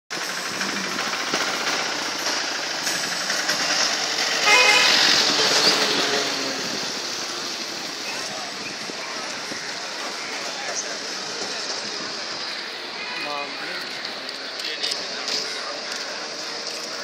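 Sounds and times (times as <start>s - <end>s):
vehicle road noise: 0.1s - 17.0s
vehicle horn: 4.4s - 5.6s.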